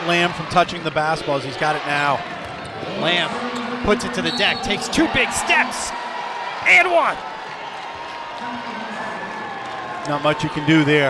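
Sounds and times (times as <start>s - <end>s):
crowd applause: 3.1s - 11.0s.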